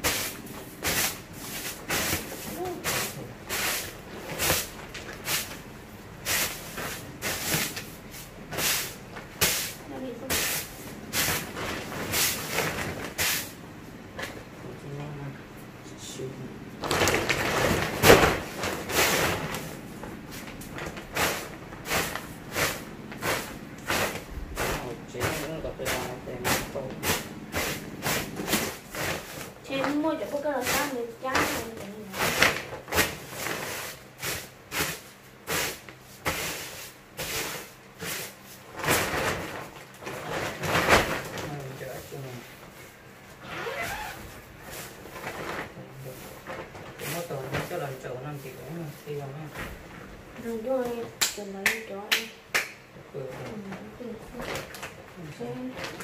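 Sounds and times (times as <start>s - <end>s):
broom sweeping concrete floor: 0.0s - 13.6s, 18.0s - 39.3s, 44.1s - 49.5s.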